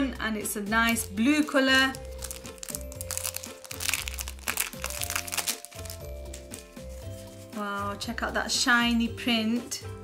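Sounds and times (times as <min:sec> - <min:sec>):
background music: 0:00.0 - 0:10.0
plastic crinkling and rustling: 0:00.9 - 0:07.5.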